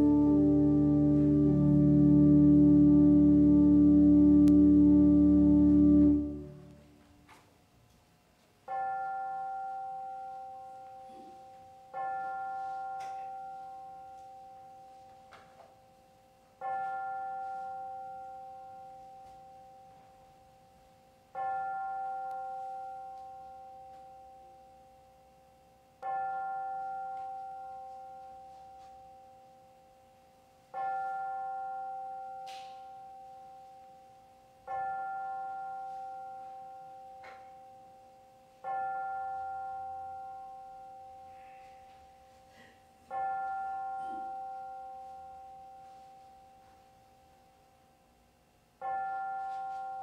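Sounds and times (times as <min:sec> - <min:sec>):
bell ringing: 0:43.1 - 0:46.4.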